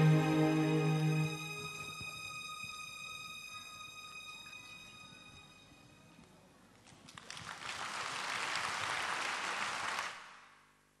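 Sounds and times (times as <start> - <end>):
audience applauding: 6.8 - 10.5.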